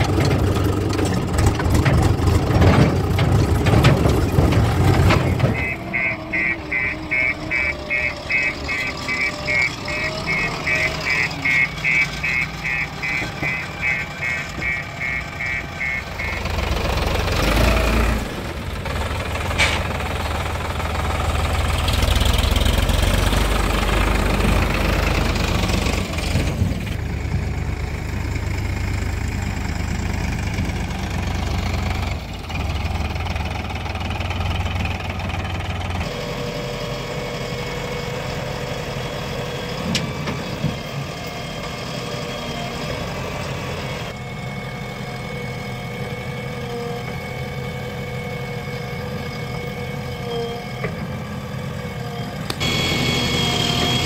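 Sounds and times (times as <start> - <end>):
diesel engines rumbling: 0.0 - 54.0
steady engine hum: 0.0 - 54.0.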